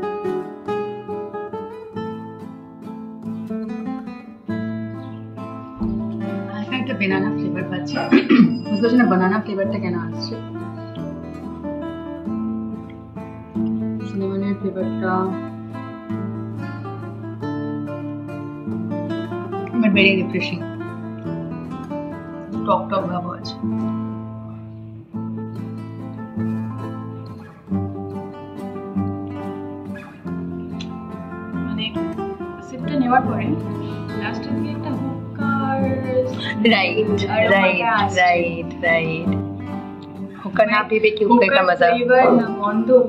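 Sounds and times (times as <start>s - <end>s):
strummed acoustic guitar: 0.0s - 43.0s.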